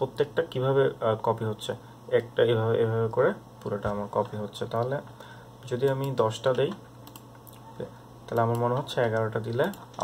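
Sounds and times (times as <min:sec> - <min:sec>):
man speaking: 0:00.0 - 0:06.8
computer keyboard keystrokes: 0:05.8 - 0:07.6, 0:08.3 - 0:10.0.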